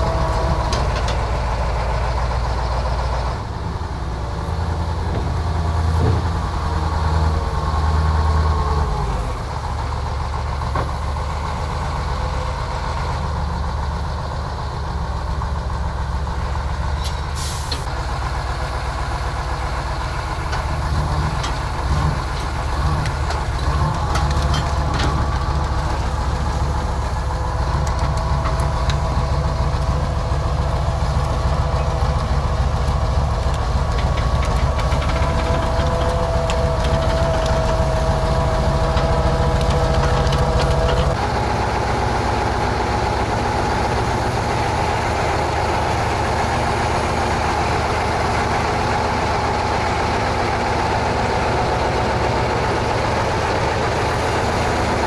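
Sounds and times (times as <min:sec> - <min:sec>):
diesel truck engine under load: 0:00.0 - 0:55.0.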